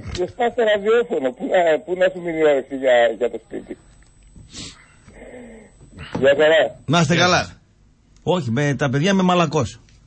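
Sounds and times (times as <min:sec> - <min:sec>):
breath noise: 0:04.4 - 0:06.3.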